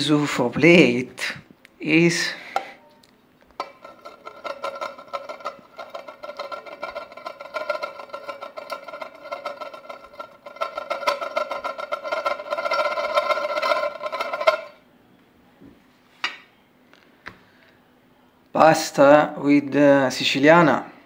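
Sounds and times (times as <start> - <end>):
ceramic plates grinding and ringing: 3.6 - 14.8.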